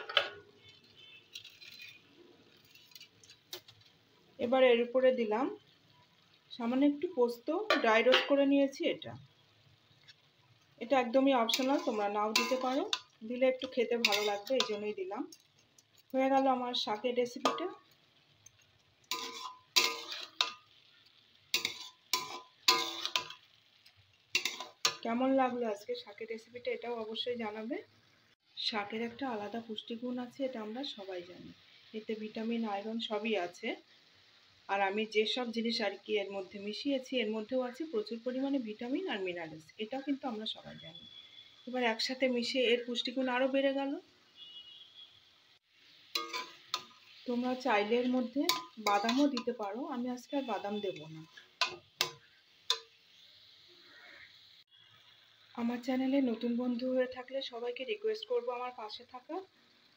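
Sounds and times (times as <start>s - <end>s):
metal spatula clinking in a pan: 0.0s - 3.7s, 11.4s - 16.5s, 18.4s - 20.8s, 21.5s - 23.5s, 24.3s - 25.1s, 46.1s - 47.0s, 48.1s - 49.6s, 51.2s - 53.0s
metal spatula knocking pan: 7.6s - 8.4s, 11.5s - 14.8s, 17.4s - 17.8s, 48.4s - 49.6s.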